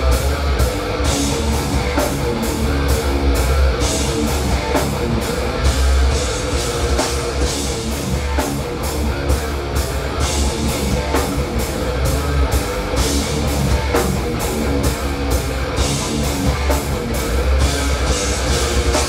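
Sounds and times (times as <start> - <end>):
heavy metal band playing: 0.0 - 19.0.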